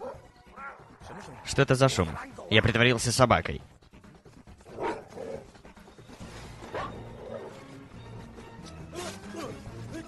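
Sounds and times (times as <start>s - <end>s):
quiet film music: 0.0s - 10.0s.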